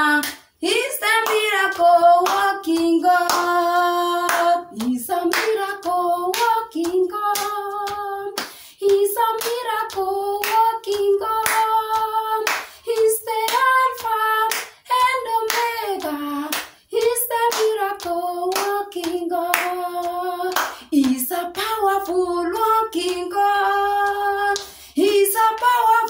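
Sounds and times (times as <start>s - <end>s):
hand claps: 0.0s - 26.0s
woman singing gospel: 0.0s - 26.0s.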